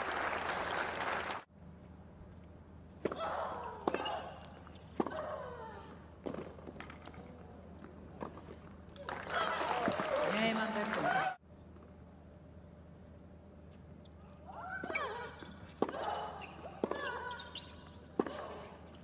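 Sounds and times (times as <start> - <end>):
crowd applause and cheering: 0.0 - 1.5, 9.0 - 11.4.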